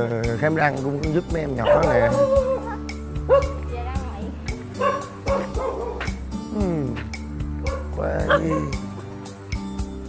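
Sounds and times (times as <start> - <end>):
background music: 0.0 - 10.0
dog barking: 1.6 - 3.6, 4.8 - 6.1, 7.6 - 8.8.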